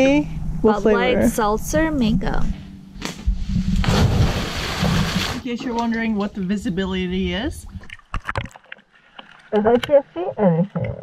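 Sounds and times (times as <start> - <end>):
heavy splash into river: 3.8 - 5.4.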